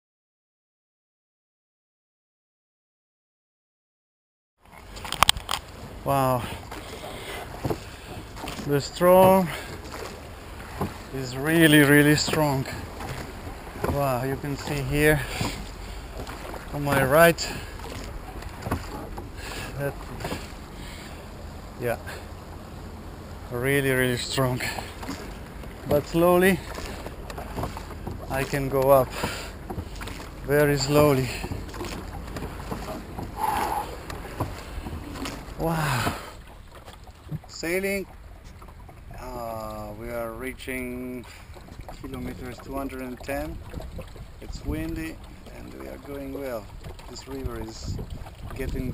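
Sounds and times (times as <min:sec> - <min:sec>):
river water: 0:04.6 - 0:48.9
wind: 0:04.6 - 0:48.9
oars knocking in oarlocks: 0:06.6 - 0:21.1, 0:24.6 - 0:37.6.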